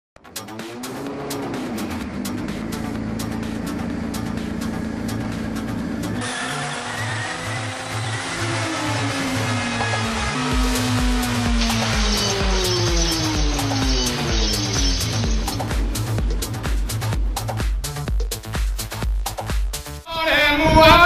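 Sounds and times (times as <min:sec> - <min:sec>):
engine revving with crackling: 0:00.2 - 0:17.7
electronic music: 0:00.2 - 0:20.3
pulsing beat: 0:01.6 - 0:06.2, 0:08.6 - 0:20.0.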